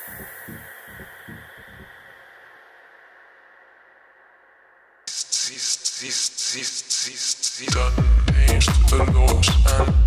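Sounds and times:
electronic shaker percussion: 0.0s - 1.9s.

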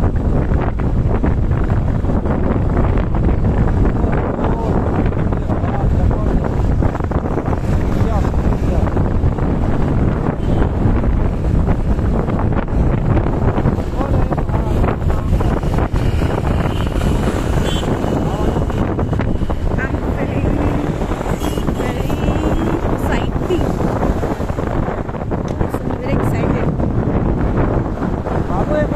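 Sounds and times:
road and engine noise: 0.0s - 28.9s
wind buffeting microphone: 0.0s - 28.9s.

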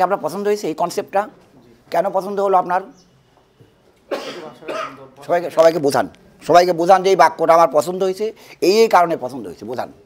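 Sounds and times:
man coughing: 4.1s - 5.1s.

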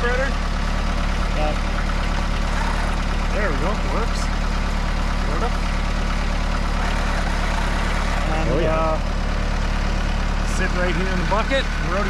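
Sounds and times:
tractor diesel engine idling: 0.0s - 12.0s.

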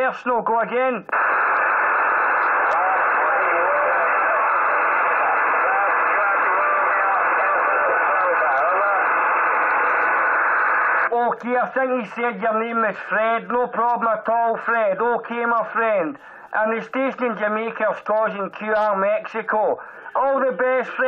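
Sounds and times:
radio static hiss: 0.0s - 21.0s
distant radio voice: 2.4s - 11.3s.

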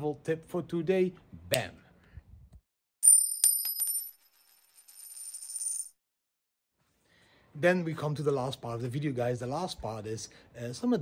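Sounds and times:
metallic coin clinks: 3.0s - 6.0s.

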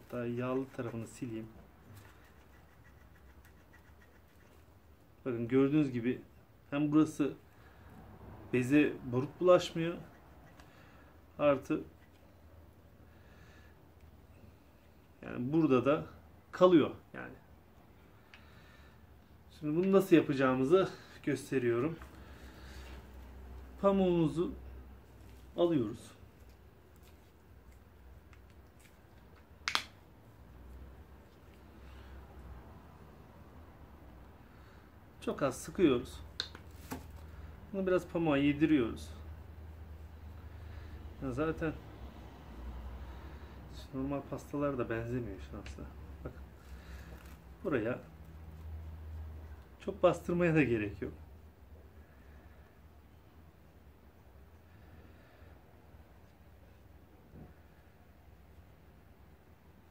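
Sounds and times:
faint handling noises: 0.0s - 5.2s, 25.0s - 29.6s, 36.3s - 37.5s
plastic cap click: 29.4s - 30.0s.

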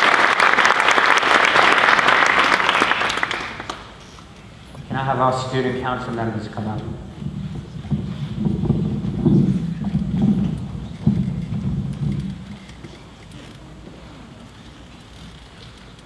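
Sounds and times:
quiet hall ambience: 0.0s - 16.0s
microphone handling noise: 6.6s - 15.8s.

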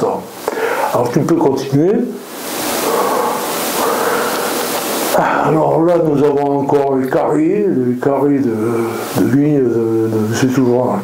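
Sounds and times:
breathy rush of air on microphone: 0.3s - 1.2s, 2.2s - 6.1s, 8.4s - 10.4s.

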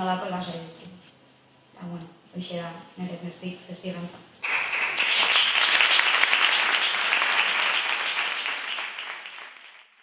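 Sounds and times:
audience applause: 4.4s - 10.0s.

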